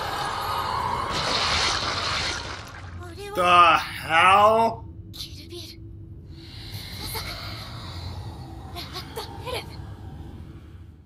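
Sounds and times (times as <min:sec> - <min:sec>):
film soundtrack: 0:00.0 - 0:11.0.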